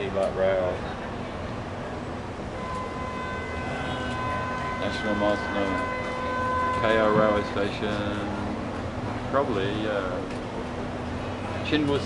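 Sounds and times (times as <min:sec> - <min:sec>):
city traffic rumble: 0:00.0 - 0:12.0
high-pitched tones: 0:02.6 - 0:08.4.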